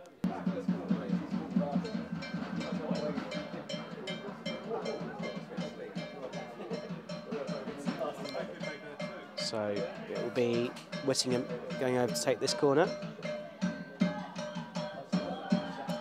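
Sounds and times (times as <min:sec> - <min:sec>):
crowd chanting: 0:00.0 - 0:16.0
percussion beat: 0:00.0 - 0:16.0.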